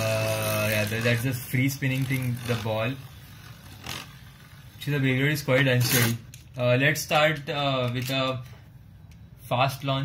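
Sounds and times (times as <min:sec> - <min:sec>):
spinning top whirring: 0:00.0 - 0:06.2
spinning top scraping: 0:00.0 - 0:06.4.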